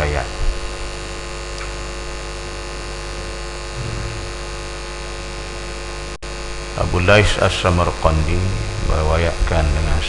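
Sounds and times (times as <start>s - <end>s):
electrical mains hum: 0.0s - 10.0s
microphone hiss: 0.0s - 10.0s.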